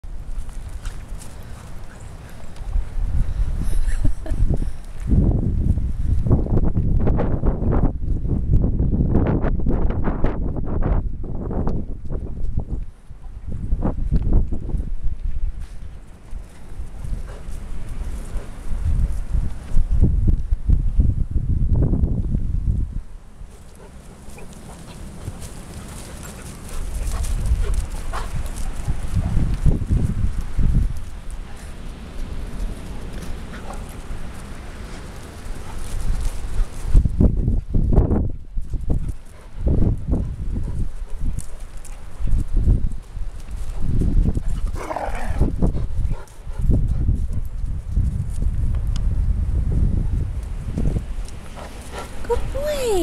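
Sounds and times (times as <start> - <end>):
wind rumble on microphone: 0.0 - 53.0.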